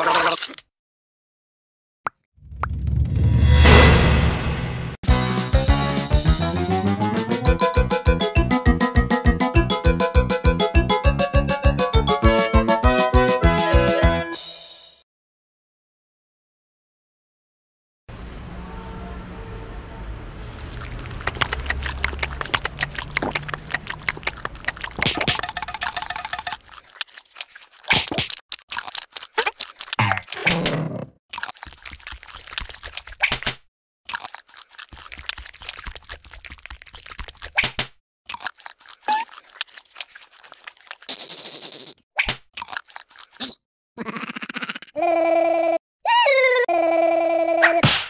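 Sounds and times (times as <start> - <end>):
cartoon clicks and crunches: 20.7 - 45.0.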